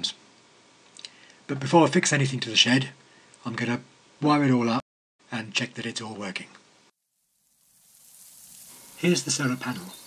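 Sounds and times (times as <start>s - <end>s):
background hiss: 0.0s - 10.0s.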